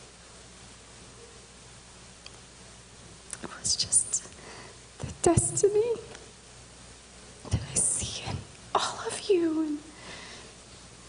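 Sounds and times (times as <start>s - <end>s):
woman whispering into microphone: 3.4s - 4.4s, 7.5s - 9.3s.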